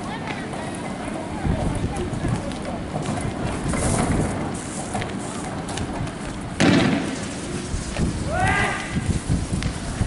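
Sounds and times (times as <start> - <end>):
loud gunshot bang: 6.6 - 7.2
person shouting: 8.3 - 9.0.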